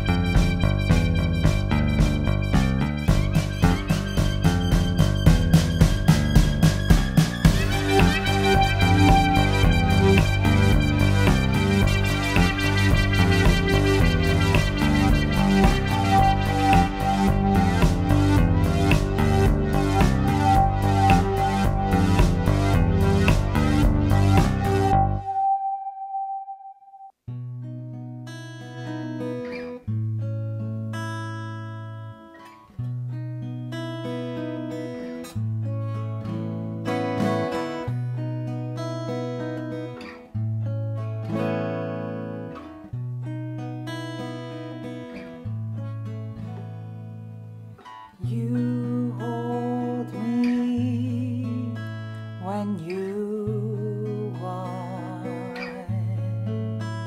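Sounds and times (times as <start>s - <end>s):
acoustic guitar chords: 0.0s - 57.0s
person singing wordlessly: 48.2s - 51.8s, 52.4s - 56.4s.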